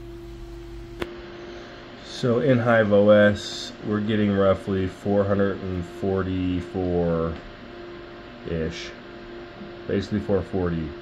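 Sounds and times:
constant hum: 0.0s - 11.0s
cooling fans whirring: 0.0s - 11.0s
sharp click: 1.0s - 1.2s.

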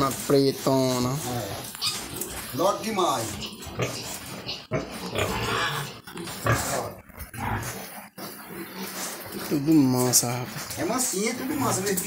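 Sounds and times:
pigs grunting: 0.0s - 12.0s.

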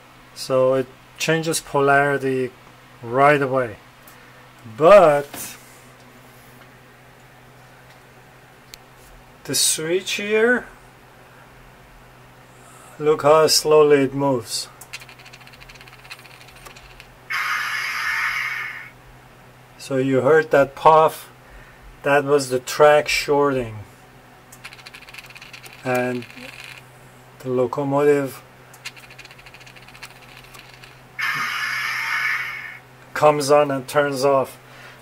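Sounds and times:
loud electrical hiss: 17.3s - 18.9s, 30.5s - 32.8s
faint rapid ticking of track points: 24.6s - 26.8s.

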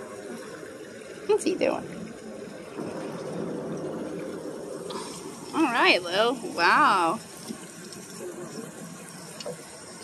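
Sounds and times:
water splashing and trickling: 0.0s - 10.0s.

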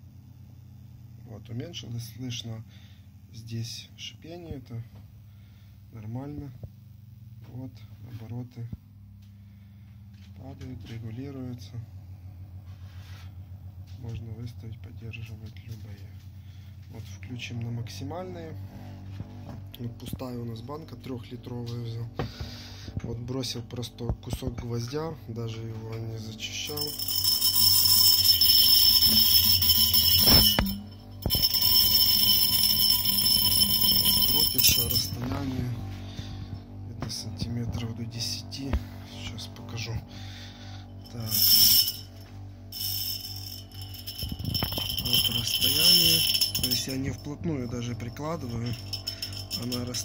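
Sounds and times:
glass jar ringing with high tones: 26.4s - 36.1s, 40.9s - 50.0s
small electric motor humming: 26.7s - 36.8s, 40.0s - 47.2s.

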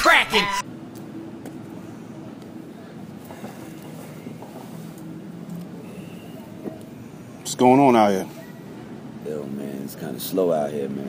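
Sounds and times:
distant traffic hiss: 0.6s - 11.0s
wind: 0.6s - 11.0s.

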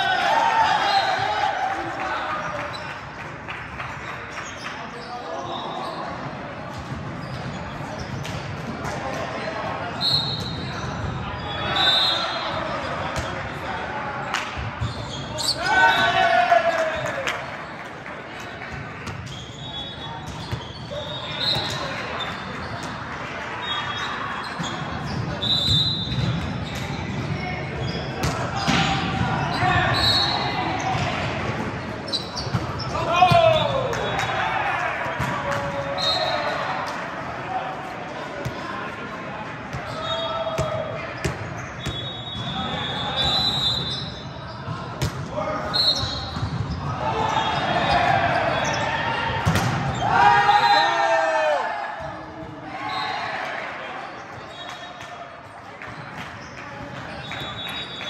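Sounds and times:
players shouting: 0.0s - 2.9s, 9.0s - 17.5s, 27.6s - 41.2s, 41.9s - 54.6s
shoes squeaking on court: 2.6s - 3.0s, 3.9s - 8.6s, 14.6s - 15.7s, 18.6s - 23.0s, 23.6s - 33.6s, 39.7s - 50.1s
volleyball struck and bouncing: 49.4s - 50.0s.

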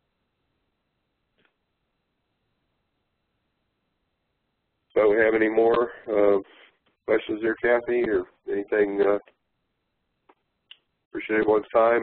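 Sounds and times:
man saying uh: 5.0s - 9.2s, 11.2s - 12.0s.

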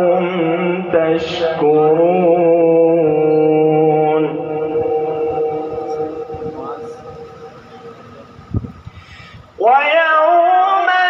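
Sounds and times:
man reciting through loudspeaker: 0.0s - 8.5s, 9.4s - 11.0s.

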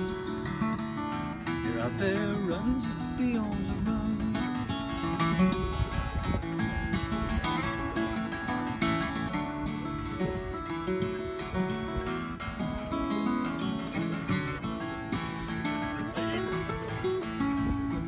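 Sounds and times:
acoustic guitar picked and strummed: 0.0s - 18.0s.

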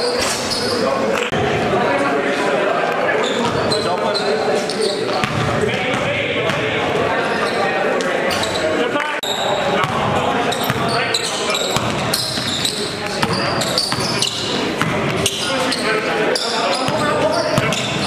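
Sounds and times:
voices echoing in hall: 0.0s - 18.0s
basketball bouncing on gym court: 5.1s - 6.7s, 11.7s - 15.4s, 16.9s - 18.0s.

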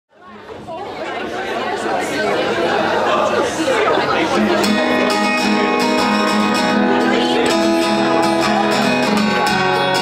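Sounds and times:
audience chatter: 0.1s - 10.0s.

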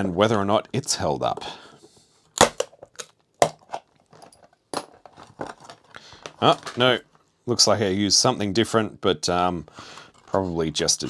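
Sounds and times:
plastic case cracking: 2.4s - 7.0s.

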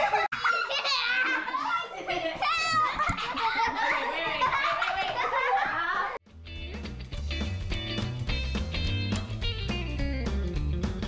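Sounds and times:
girls laughing: 0.0s - 6.2s.

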